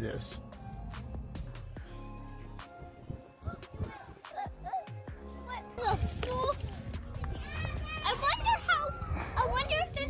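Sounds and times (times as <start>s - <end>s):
background music: 0.0s - 10.0s
children calling and chattering: 3.2s - 10.0s.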